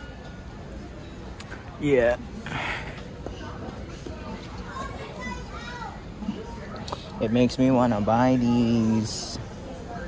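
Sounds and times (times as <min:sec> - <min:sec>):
child's voice: 0:04.7 - 0:06.1.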